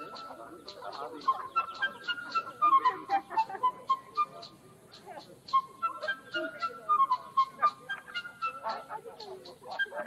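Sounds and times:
flute melody: 0.0 - 10.0
geese honking: 0.0 - 10.0.

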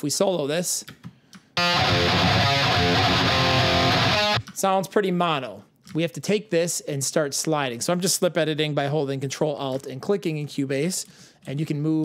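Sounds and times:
distorted metal rhythm guitars: 1.6 - 4.4.

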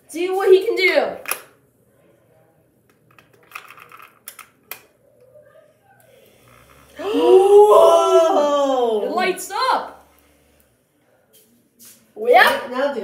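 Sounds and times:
batteries clicking into place: 2.9 - 4.9.

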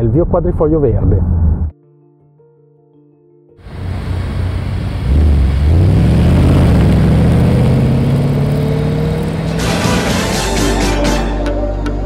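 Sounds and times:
car engine accelerating: 3.6 - 10.5.

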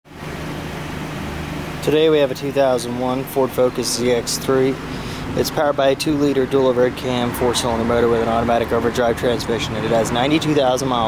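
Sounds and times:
low mechanical hum: 0.1 - 11.0.

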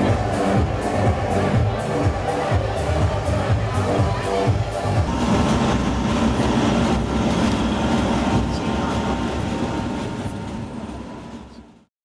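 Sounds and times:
vehicle engine: 4.7 - 11.9.

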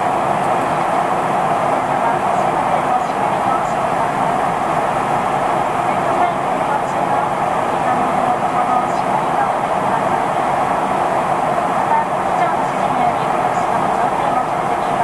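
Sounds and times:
air rushing along fuselage: 0.0 - 15.0
jet engines droning: 0.0 - 15.0.

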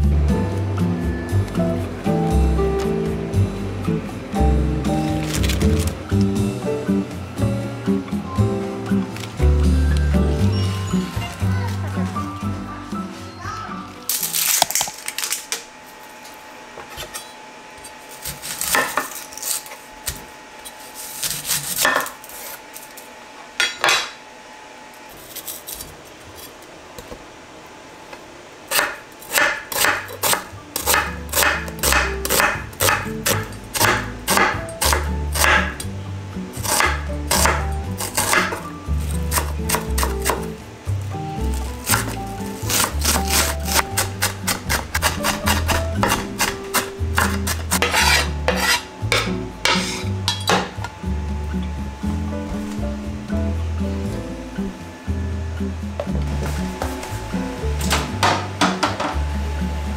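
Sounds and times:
background music with bass: 0.0 - 13.9, 30.8 - 59.9
onion being peeled: 5.0 - 6.4, 14.1 - 16.1, 17.8 - 23.1, 28.7 - 35.7, 36.6 - 40.5, 41.4 - 48.9
knife chopping on wooden board: 28.7 - 35.8, 36.6 - 38.6, 41.6 - 50.7.

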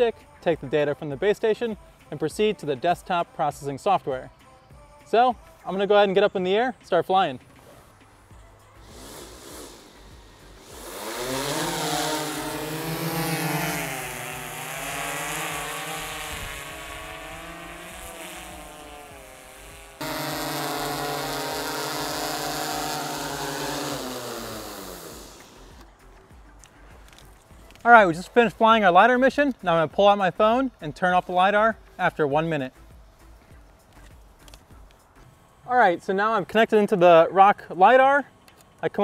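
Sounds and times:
drone rotors buzzing hum: 8.3 - 26.2.

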